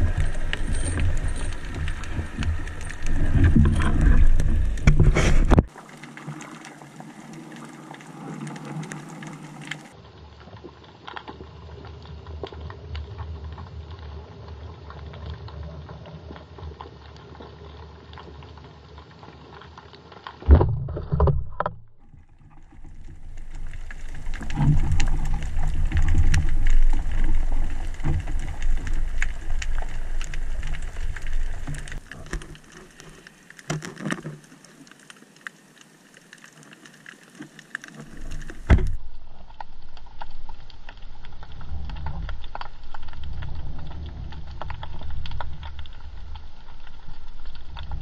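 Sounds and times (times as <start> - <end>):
low underwater rumble: 0.0 - 5.7, 20.5 - 32.6
low rumble of water: 0.0 - 48.0
small underwater clicks and crackles: 0.0 - 48.0.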